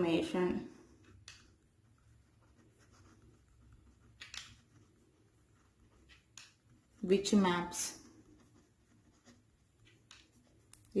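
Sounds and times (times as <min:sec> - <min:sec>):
pen scratching on paper: 0:00.9 - 0:11.0.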